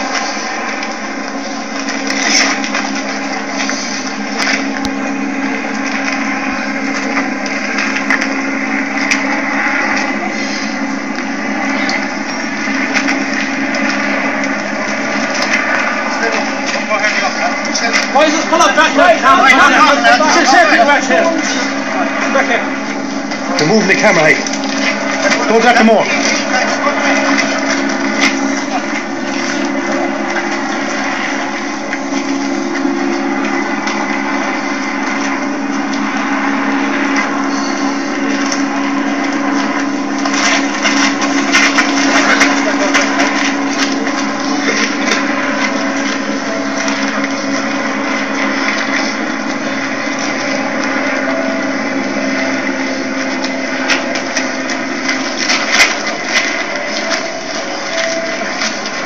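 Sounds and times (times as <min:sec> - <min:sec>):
motor hum: 0:00.0 - 0:59.0
voices: 0:00.0 - 0:59.0.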